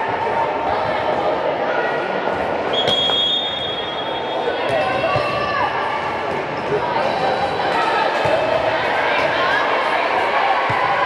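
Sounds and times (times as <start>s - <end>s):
sports hall hubbub: 0.0s - 11.0s
referee's whistle blast: 2.7s - 4.5s.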